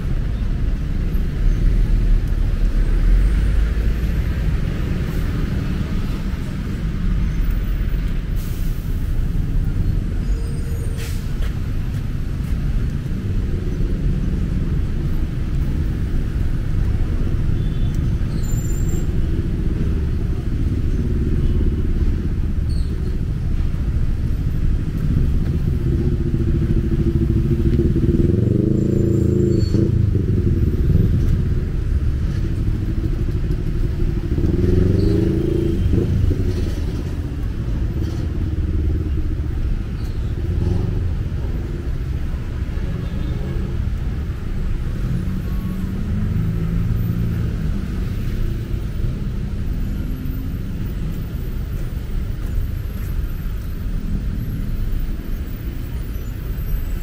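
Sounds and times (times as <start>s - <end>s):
traffic rumbling: 0.0s - 57.0s
vehicles passing: 0.0s - 57.0s.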